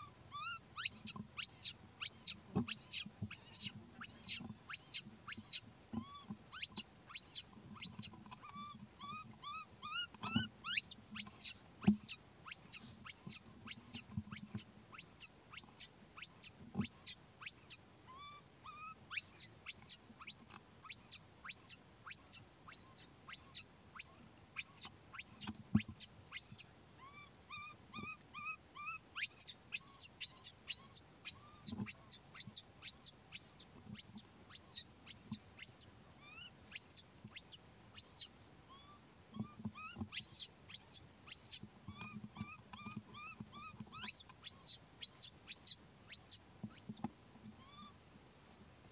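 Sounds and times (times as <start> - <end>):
infant monkey cooing: 0.0 - 19.4, 26.3 - 33.4, 34.0 - 41.0, 47.6 - 48.0
infant monkey squealing: 0.0 - 25.5, 26.3 - 46.9, 47.6 - 48.0.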